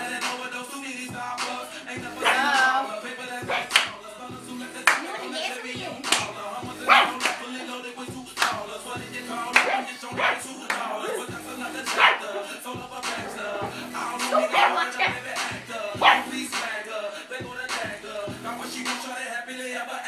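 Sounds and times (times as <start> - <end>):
music: 0.0 - 20.0
dog barking: 2.2 - 2.6, 3.5 - 3.9, 6.8 - 7.3, 9.6 - 10.5, 11.9 - 12.5, 14.3 - 15.3, 16.0 - 16.4.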